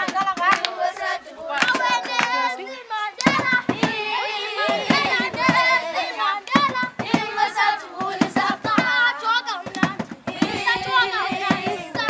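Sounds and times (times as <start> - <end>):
sharp handclaps: 0.0 - 2.6, 3.2 - 4.0, 4.7 - 7.2, 9.6 - 12.0
children singing: 0.0 - 12.0.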